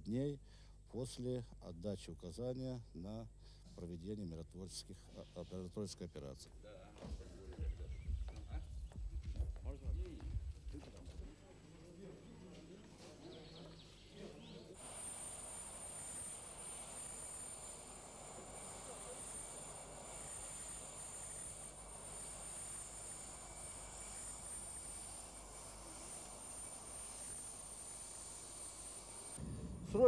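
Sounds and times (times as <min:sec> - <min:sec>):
aircraft engine whine: 0:14.7 - 0:30.0.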